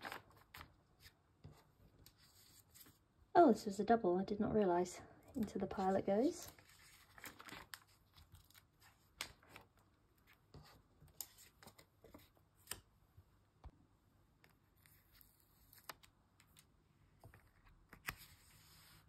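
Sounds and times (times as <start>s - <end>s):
paper rustling and clicking: 0.0s - 0.7s, 5.8s - 12.9s, 14.4s - 18.5s.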